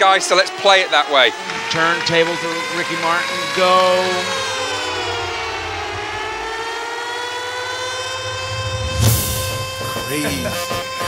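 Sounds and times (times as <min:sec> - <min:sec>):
siren-like electronic tone: 0:00.0 - 0:11.0
low throbbing bass: 0:01.4 - 0:10.8.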